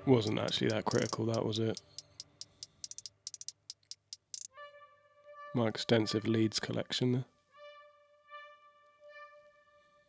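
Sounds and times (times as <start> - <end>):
faint high-pitched ticks: 0.2 - 4.5.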